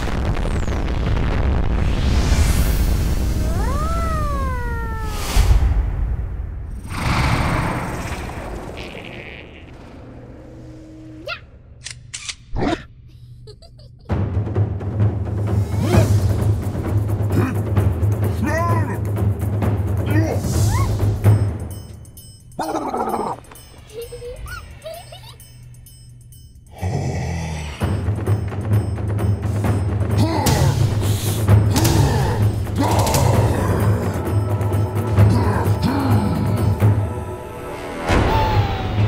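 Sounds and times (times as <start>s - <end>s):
loud noisy blast: 0.0s - 5.9s
harsh creature growl: 6.8s - 10.0s, 26.7s - 28.0s
squeaky creature calls: 8.7s - 9.9s, 22.6s - 23.4s.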